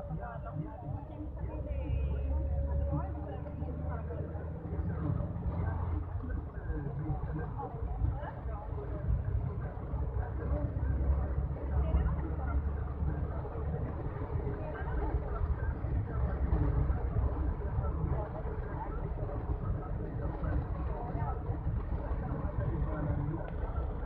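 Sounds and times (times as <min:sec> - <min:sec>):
people talking: 0:00.0 - 0:24.0
vehicle engine and tyres rumbling: 0:00.0 - 0:24.0.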